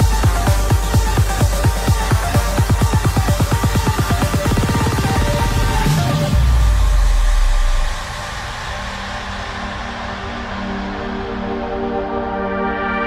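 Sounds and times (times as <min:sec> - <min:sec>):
electronic dance music beats: 0:00.0 - 0:13.0.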